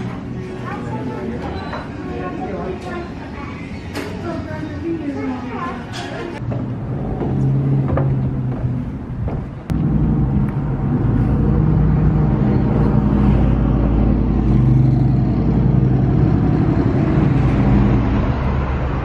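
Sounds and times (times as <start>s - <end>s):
road traffic rumble: 0.0s - 19.0s.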